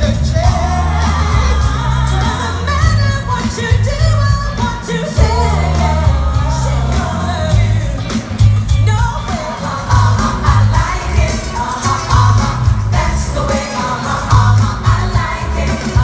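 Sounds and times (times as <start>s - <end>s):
heavy bass line: 0.0s - 16.0s
live soul-pop band: 0.0s - 16.0s
women singing: 0.0s - 16.0s.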